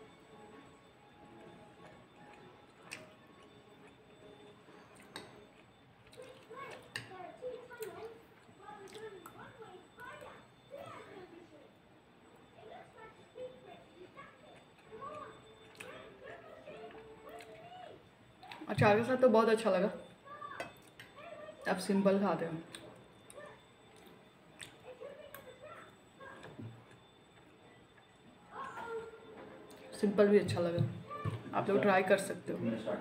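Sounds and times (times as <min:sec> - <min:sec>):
faint voices: 0:06.1 - 0:33.0.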